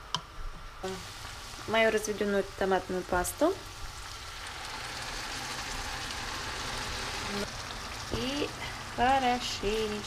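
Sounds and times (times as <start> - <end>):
meat sizzling in a frying pan: 0.8 - 10.0.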